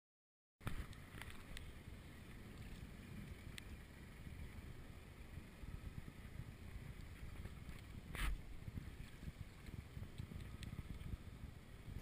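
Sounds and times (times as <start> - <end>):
faint wind rumble: 0.6 - 12.0.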